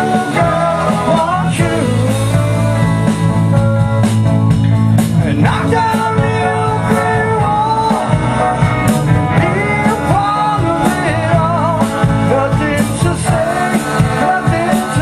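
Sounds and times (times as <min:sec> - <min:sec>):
bass guitar: 0:00.0 - 0:15.0
drum kit: 0:00.0 - 0:15.0
electric guitars: 0:00.0 - 0:15.0.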